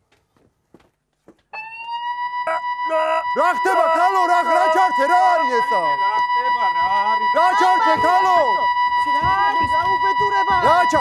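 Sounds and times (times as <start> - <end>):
high electronic tone: 1.6 - 11.0.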